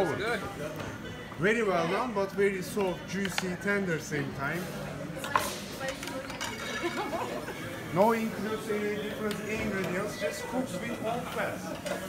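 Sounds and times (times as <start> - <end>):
faint restaurant voices: 0.0 - 12.0.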